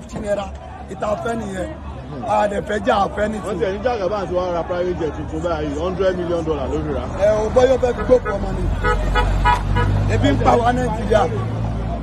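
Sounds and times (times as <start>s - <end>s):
man talking: 0.0s - 9.1s, 10.0s - 11.6s
motor vehicle rumble: 0.0s - 12.0s
traffic: 0.0s - 12.0s.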